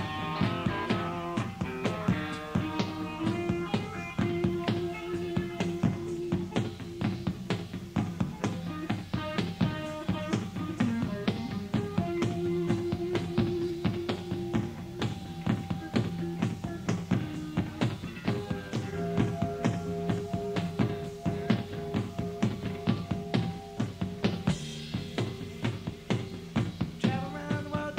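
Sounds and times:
bass and guitar notes: 0.0 - 27.9
drum kit fast beat: 0.0 - 27.9.

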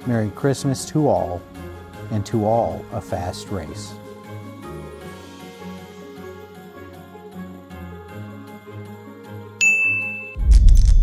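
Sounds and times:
soft background music: 0.0 - 10.6
bright chime ding: 9.6 - 10.4.

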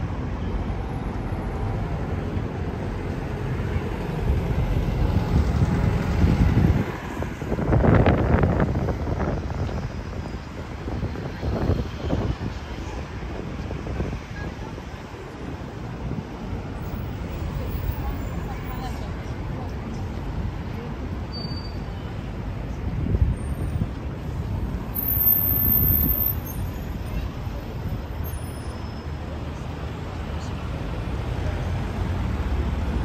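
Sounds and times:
vehicles passing: 0.0 - 33.0
wind rumbling on microphone: 2.3 - 17.9, 22.7 - 24.9.

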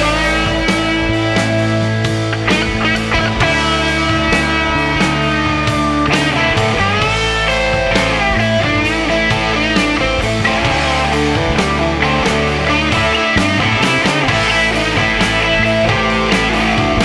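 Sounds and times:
guitar with bending notes: 0.0 - 17.0
steady drums: 0.0 - 17.0
sustained bass: 0.0 - 17.0.

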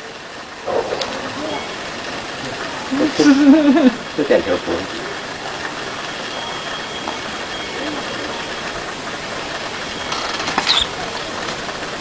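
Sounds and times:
faint high whine: 0.0 - 11.4
steady rushing noise: 0.0 - 12.0.

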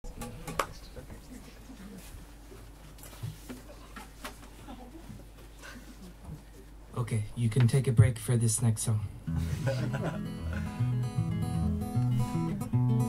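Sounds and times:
steady low hum: 0.1 - 13.0.

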